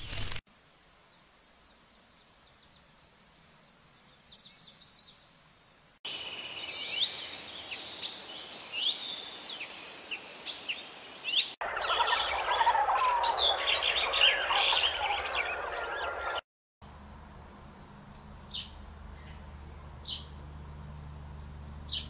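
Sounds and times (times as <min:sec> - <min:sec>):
birds chirping and calling: 0:06.6 - 0:16.4, 0:17.6 - 0:22.0.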